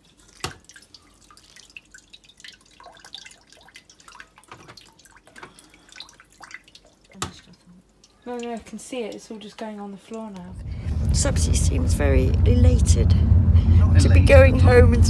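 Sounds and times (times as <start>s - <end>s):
water dripping into a pot: 0.0s - 10.6s.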